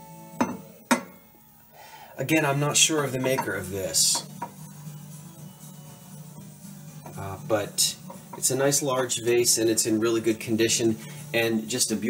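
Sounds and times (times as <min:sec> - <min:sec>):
faint background music: 0:00.0 - 0:12.0
glass vase knocking on stone: 0:00.4 - 0:01.2, 0:03.2 - 0:04.6.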